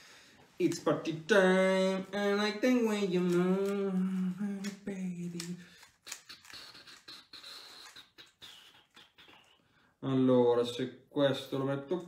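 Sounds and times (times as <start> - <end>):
puzzle cube plastic clicks: 4.6 - 8.1.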